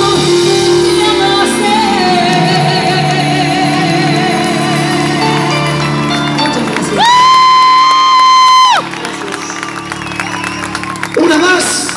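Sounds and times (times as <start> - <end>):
audience cheering: 6.2 - 11.9.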